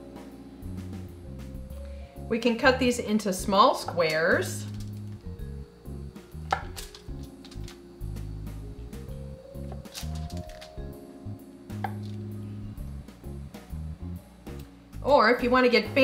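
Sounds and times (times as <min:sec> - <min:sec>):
background music with low notes: 0:00.0 - 0:16.0
knife tapping on cutting board: 0:11.8 - 0:12.0.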